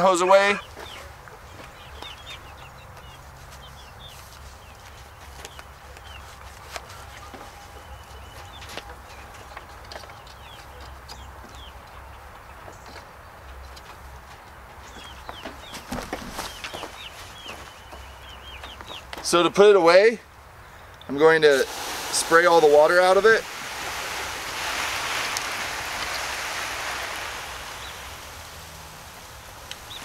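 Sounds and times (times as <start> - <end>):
birds chirping: 0.0 - 30.0
chickens clucking: 0.1 - 19.5.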